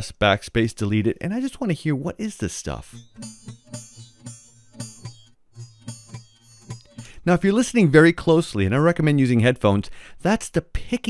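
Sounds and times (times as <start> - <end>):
faint low guitar tones: 2.8 - 8.2
guitar string picking clicks: 2.9 - 7.2.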